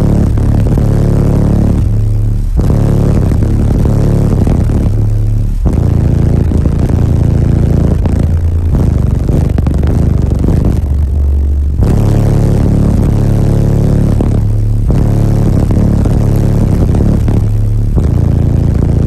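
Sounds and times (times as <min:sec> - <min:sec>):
loud bass-heavy music from subwoofers: 0:00.0 - 0:19.0.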